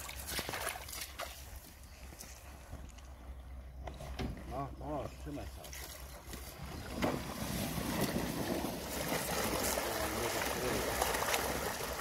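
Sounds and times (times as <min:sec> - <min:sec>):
water gushing and splashing: 0:00.0 - 0:01.6, 0:06.0 - 0:12.0.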